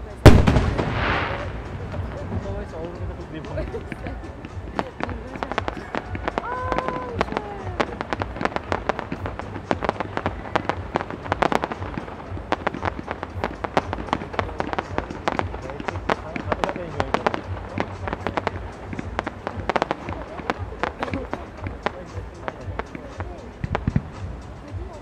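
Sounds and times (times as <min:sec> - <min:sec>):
firework shells bursting: 0:00.2 - 0:02.8, 0:03.9 - 0:24.3.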